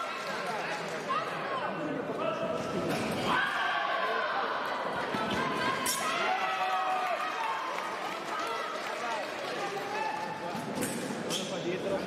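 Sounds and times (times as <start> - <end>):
general hubbub: 0.0 - 12.0.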